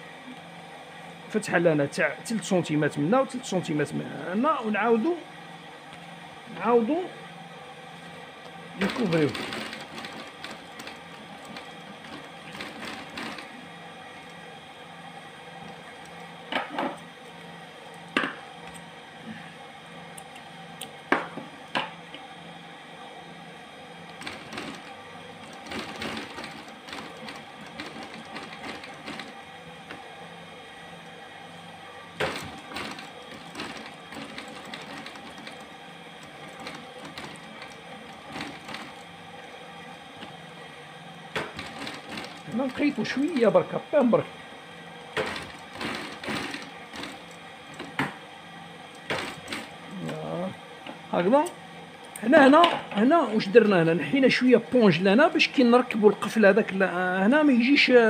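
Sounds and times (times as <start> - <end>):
sewing machine stitching: 8.8 - 13.7, 24.1 - 29.4, 32.2 - 39.1, 41.3 - 43.6, 45.1 - 48.0, 48.9 - 50.1.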